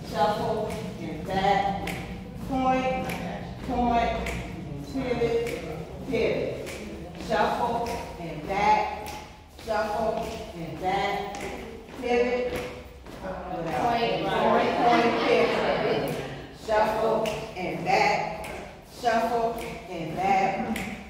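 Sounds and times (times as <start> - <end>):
person talking: 0.0 - 21.0.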